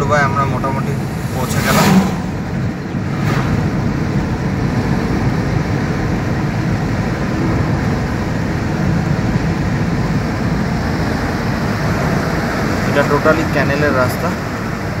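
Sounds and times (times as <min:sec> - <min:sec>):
car road noise from cabin: 0:00.0 - 0:15.0.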